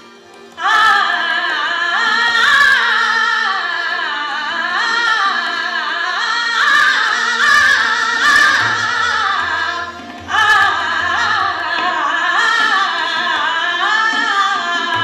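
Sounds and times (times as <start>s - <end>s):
harmonium: 0.0s - 15.0s
tabla: 0.0s - 15.0s
woman singing classical vocal line: 0.6s - 15.0s.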